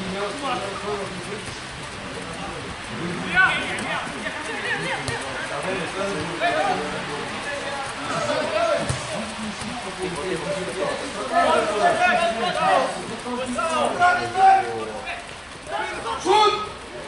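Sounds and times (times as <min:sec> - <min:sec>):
spectators and players shouting: 0:00.6 - 0:17.0.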